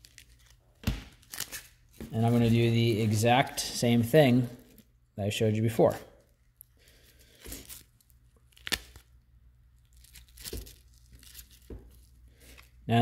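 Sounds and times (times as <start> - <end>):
nylon pouch handling: 9.8 - 12.9.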